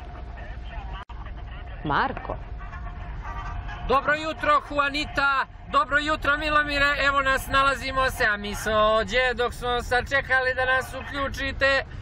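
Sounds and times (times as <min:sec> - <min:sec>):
vehicle engine and road rumble: 0:00.0 - 0:12.0.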